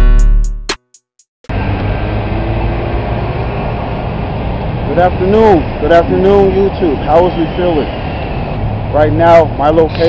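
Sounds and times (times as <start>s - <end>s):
bus rumbling: 1.5s - 10.0s
city street traffic: 1.5s - 10.0s.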